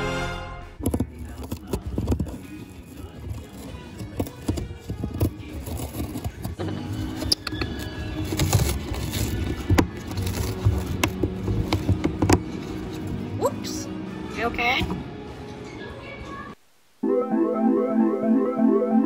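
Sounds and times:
background music: 0:00.0 - 0:19.0
parrot tearing cardboard: 0:07.2 - 0:12.2.

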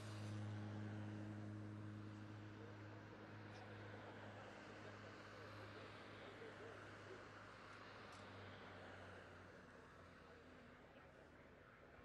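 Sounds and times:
faint distant voices: 0:01.9 - 0:12.0.

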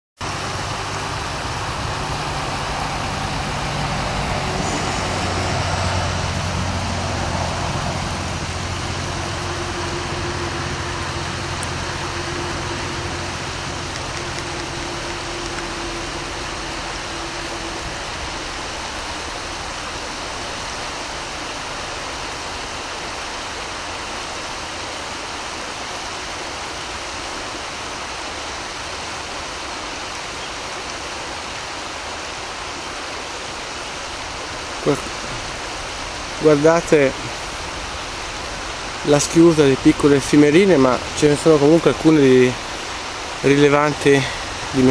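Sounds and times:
low droning hum: 0:00.2 - 0:31.6, 0:32.3 - 0:44.9
flowing river water: 0:00.2 - 0:44.9.

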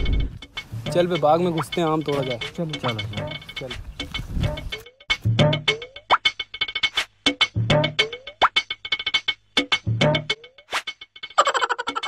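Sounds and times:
playful comedy music: 0:00.0 - 0:12.0.

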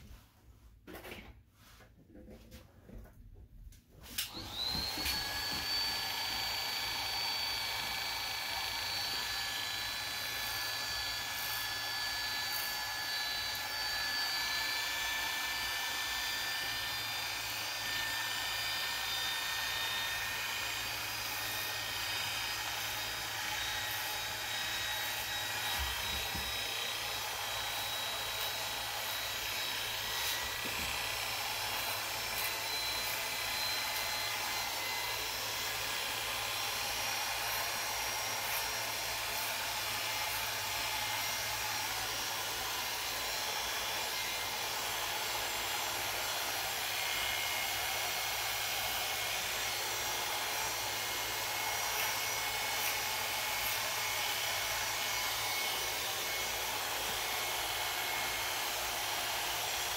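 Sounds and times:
electric hair clipper running: 0:04.2 - 0:59.9.

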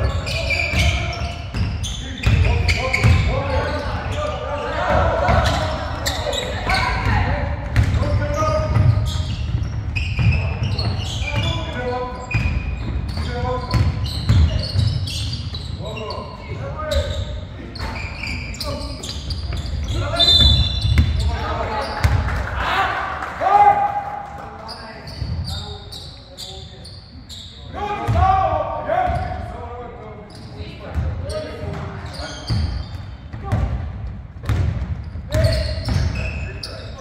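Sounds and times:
voices calling out: 0:00.0 - 0:26.7
basketball bouncing on wooden floor: 0:34.4 - 0:36.2.

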